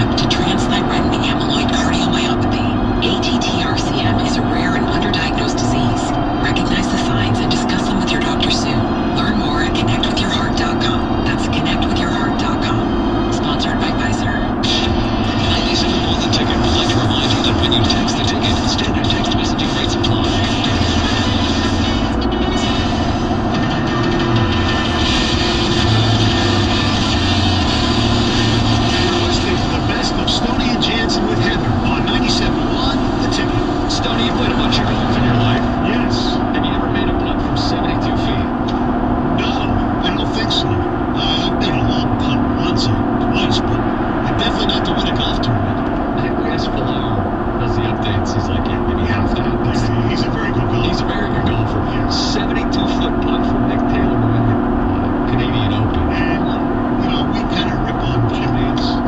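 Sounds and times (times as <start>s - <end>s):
low drone: 0.0s - 59.0s
road and wind noise in car: 0.0s - 59.0s.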